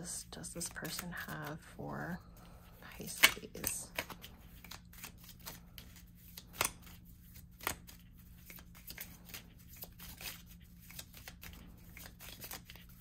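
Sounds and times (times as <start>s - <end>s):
cards being shuffled: 0.4s - 1.6s, 2.9s - 13.0s.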